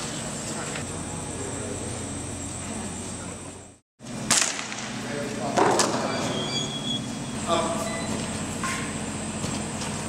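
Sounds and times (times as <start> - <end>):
indoor arena hum: 0.0 - 10.0
sharp cracks: 4.3 - 5.0.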